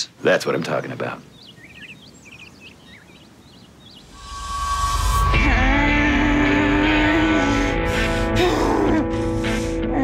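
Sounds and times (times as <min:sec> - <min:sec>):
small birds chirping: 0:00.0 - 0:04.4
background music: 0:04.1 - 0:10.0.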